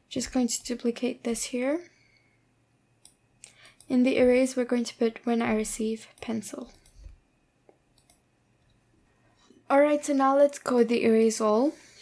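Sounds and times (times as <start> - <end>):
woman speaking: 0.1 - 1.9, 3.9 - 6.8, 9.7 - 11.9
faint computer mouse clicks: 6.2 - 8.8.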